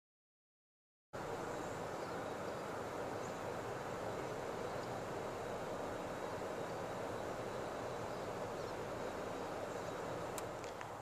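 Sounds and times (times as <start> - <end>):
outdoor low rumble: 1.2 - 11.0.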